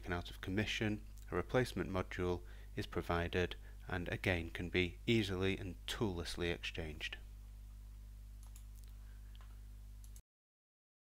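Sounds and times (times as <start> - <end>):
steady low hum: 0.0 - 10.2.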